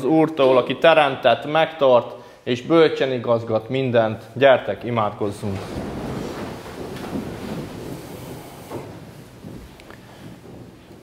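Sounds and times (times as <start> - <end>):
congregation shuffling and rustling: 4.2 - 11.0.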